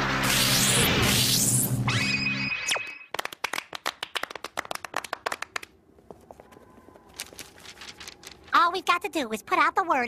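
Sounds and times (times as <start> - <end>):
small crowd clapping: 3.1 - 5.8.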